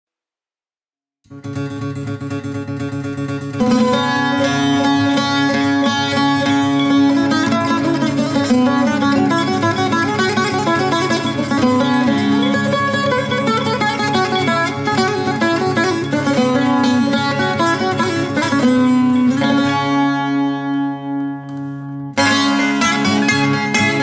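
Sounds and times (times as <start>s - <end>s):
bouzouki melody: 1.3s - 24.0s
plucked guitar: 1.3s - 24.0s.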